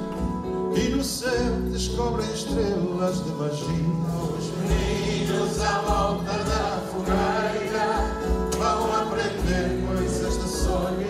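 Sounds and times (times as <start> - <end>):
guitar accompaniment: 0.0 - 11.0
man singing: 0.7 - 7.3, 8.6 - 11.0.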